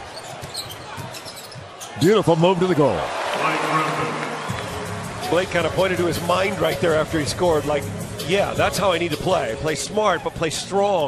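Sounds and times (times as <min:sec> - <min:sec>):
arena crowd noise: 0:00.0 - 0:07.9.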